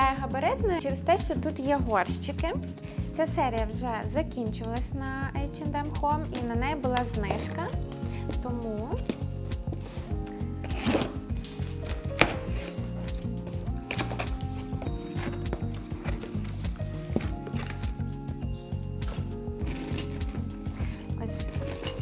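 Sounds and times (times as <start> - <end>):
soft background music: 0.0 - 22.0
scissors cutting packing tape: 10.4 - 13.2, 13.8 - 18.1, 19.0 - 22.0
cardboard flaps pulled open: 10.6 - 12.8.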